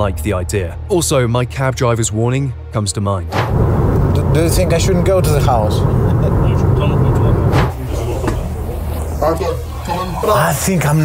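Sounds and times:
road and engine rumble in car: 0:03.5 - 0:08.1.

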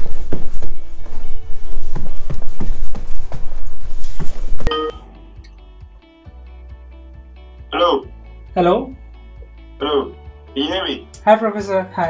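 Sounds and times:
hurried footsteps thudding: 0:00.0 - 0:04.7
music: 0:00.0 - 0:12.0
brief ringing tone: 0:04.7 - 0:05.1.

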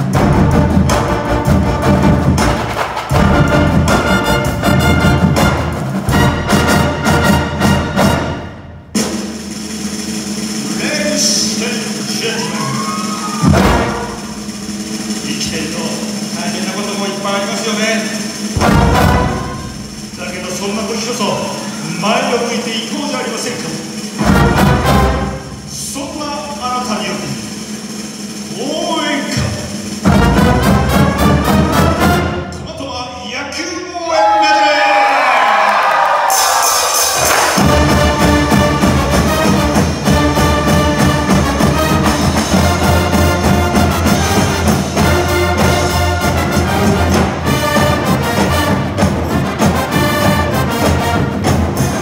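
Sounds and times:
loud deep drum hit: 0:00.0 - 0:09.8, 0:13.4 - 0:15.3, 0:18.5 - 0:20.8, 0:29.3 - 0:32.7, 0:37.2 - 0:52.0
drums and percussion: 0:00.0 - 0:52.0
marching band playing: 0:00.0 - 0:52.0
crowd cheering and shouting: 0:12.2 - 0:14.4, 0:33.6 - 0:38.7.

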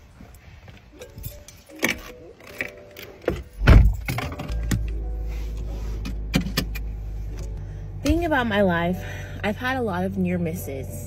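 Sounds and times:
handling clicks and rustles: 0:00.0 - 0:08.3
steady low car hum: 0:00.0 - 0:11.0.

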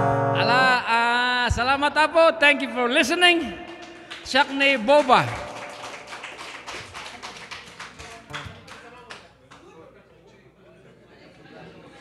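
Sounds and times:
people clapping: 0:03.3 - 0:09.9.

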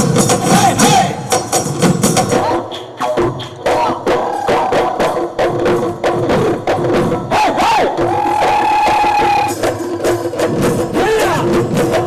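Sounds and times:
dhol drums: 0:00.0 - 0:12.0
performers shouting and whooping: 0:00.4 - 0:01.3, 0:07.3 - 0:09.6, 0:11.0 - 0:11.6.

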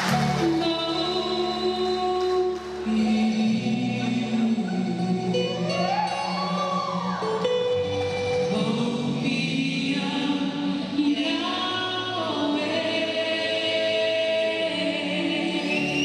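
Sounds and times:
dance music: 0:00.0 - 0:11.0
choir singing long held notes: 0:12.5 - 0:16.0.

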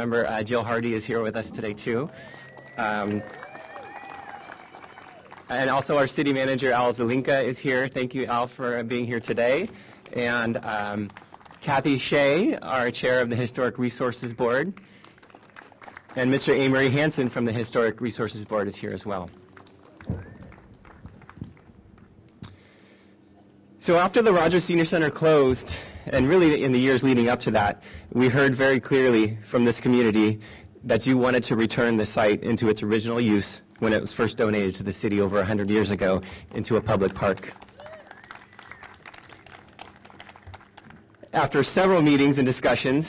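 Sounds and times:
faint scattered clapping: 0:02.1 - 0:06.3, 0:09.0 - 0:12.2, 0:14.6 - 0:22.6, 0:35.9 - 0:41.4.

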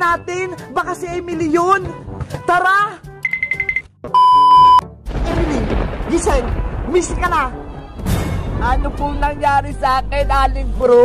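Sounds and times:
loud steady beep: 0:03.2 - 0:04.8
short high beeps: 0:03.2 - 0:04.8.

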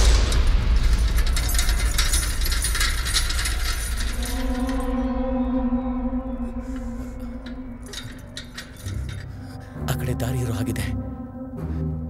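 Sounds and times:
metallic clicking rattle: 0:00.0 - 0:05.2, 0:06.4 - 0:09.7
low rumble: 0:00.0 - 0:09.8
held musical note: 0:01.4 - 0:11.6.

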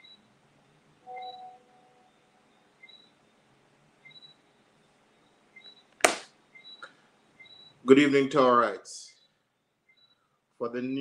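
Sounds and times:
faint high chirps: 0:01.0 - 0:05.9, 0:06.5 - 0:08.1, 0:09.0 - 0:10.4.

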